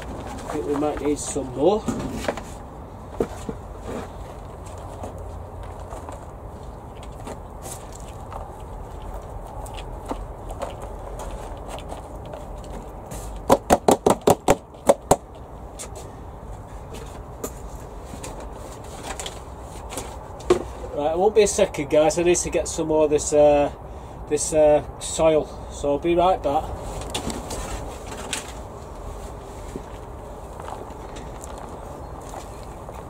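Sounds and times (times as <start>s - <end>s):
sharp knocks: 13.5s - 15.3s.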